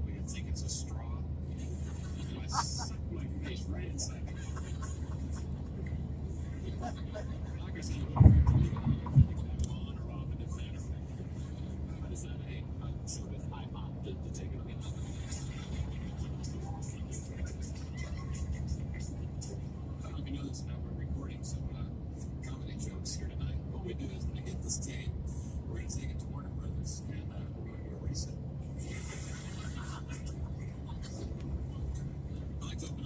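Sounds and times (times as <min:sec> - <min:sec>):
car road noise inside cabin: 0:00.0 - 0:33.0.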